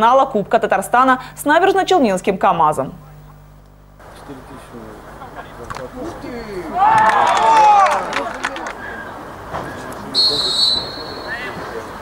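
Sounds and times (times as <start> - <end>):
faint players' voices: 3.0 - 12.0
referee's whistle blast: 10.1 - 11.6.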